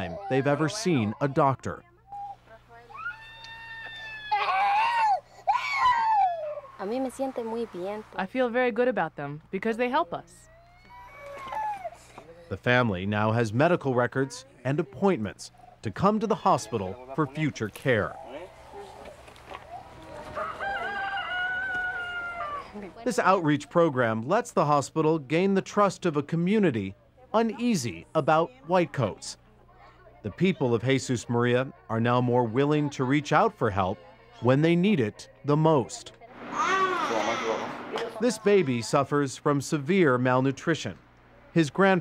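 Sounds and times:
small child crying: 2.9s - 6.8s, 10.5s - 12.2s, 36.5s - 37.7s
rooster crowing: 20.1s - 22.8s.

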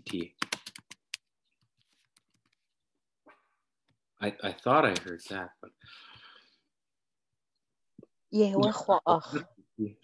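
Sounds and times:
computer keyboard typing: 0.0s - 1.3s.

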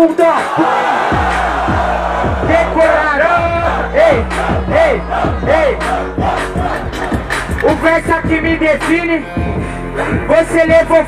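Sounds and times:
crowd and mc shouting: 0.0s - 8.0s
trap-funk beat with bass: 0.0s - 11.0s.

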